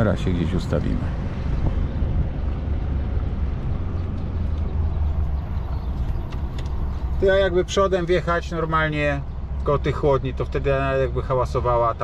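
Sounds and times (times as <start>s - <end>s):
truck diesel engine rumbling: 0.0s - 12.0s.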